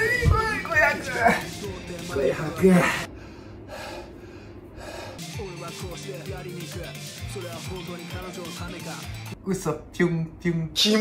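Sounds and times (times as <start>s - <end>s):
man breathing hard: 2.7s - 5.4s.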